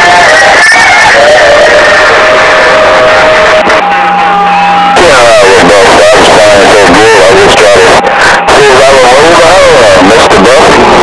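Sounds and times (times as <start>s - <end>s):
radio static: 0.0s - 11.0s.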